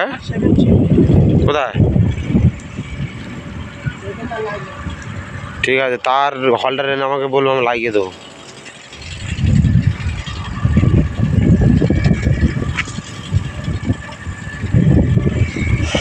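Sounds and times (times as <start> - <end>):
wind buffeting microphone: 0.0 - 16.0.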